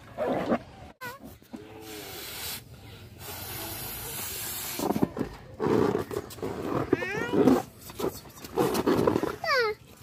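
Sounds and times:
puffs of breath into balloon: 1.8s - 5.0s.

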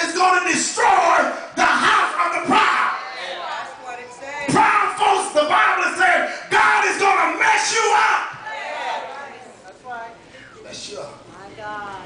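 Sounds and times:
preacher shouting into a microphone: 0.0s - 3.0s, 4.5s - 8.4s
congregation calling back: 0.0s - 11.0s.

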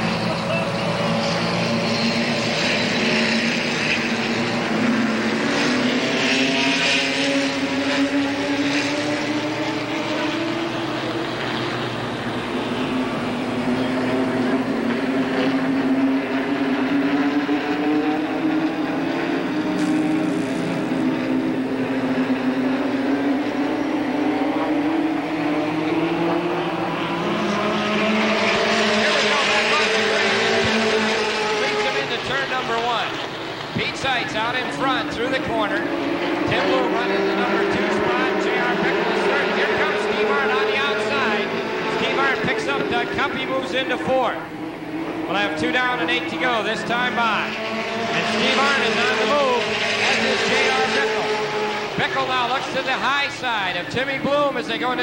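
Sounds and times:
cars passing close: 0.0s - 55.0s
stock car engines droning: 0.0s - 55.0s.

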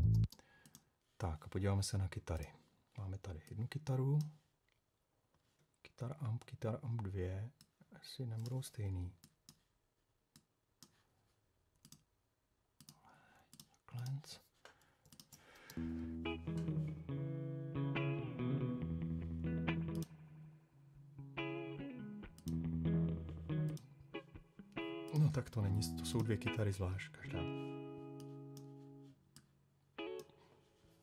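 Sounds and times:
electric guitar chords: 0.0s - 0.3s, 15.7s - 29.1s, 30.0s - 30.4s.

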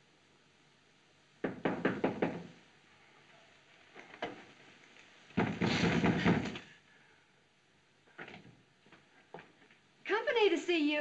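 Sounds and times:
knocks on a door: 1.4s - 2.6s, 5.4s - 6.6s.

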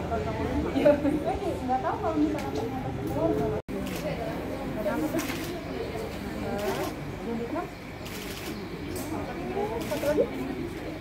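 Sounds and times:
indistinct talk of people: 0.0s - 11.0s.

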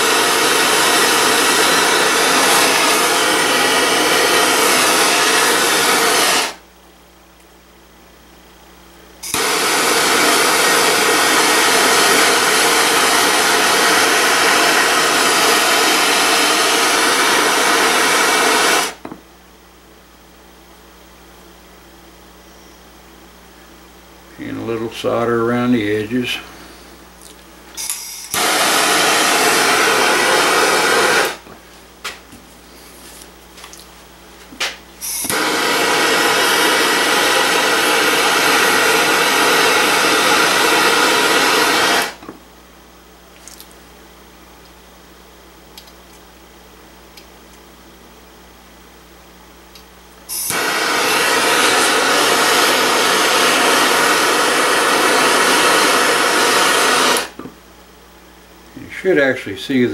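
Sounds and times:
gas torch flame hissing: 0.0s - 6.6s, 9.2s - 19.2s, 27.8s - 31.6s, 34.5s - 42.4s, 50.3s - 57.5s.

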